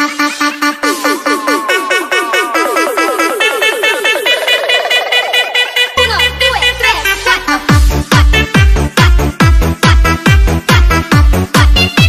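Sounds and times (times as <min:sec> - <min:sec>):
electronic dance music build-up: 0:00.0 - 0:12.0.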